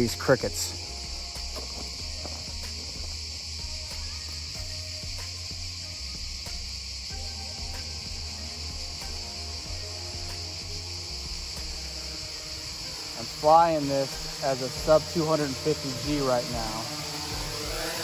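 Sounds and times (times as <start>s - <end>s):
crickets chirping: 0.0s - 18.0s.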